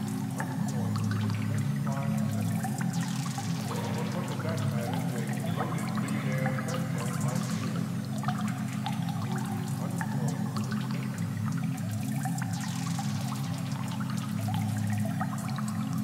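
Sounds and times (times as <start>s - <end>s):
thin ticking percussion: 0.0s - 16.0s.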